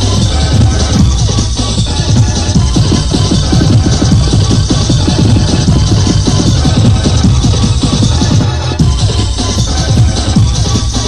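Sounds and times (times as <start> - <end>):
electronic rave dance music: 0.0 - 11.0.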